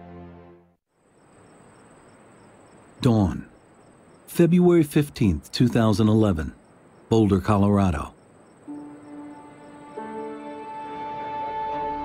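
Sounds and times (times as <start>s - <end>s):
crickets chirping: 0.9s - 12.0s.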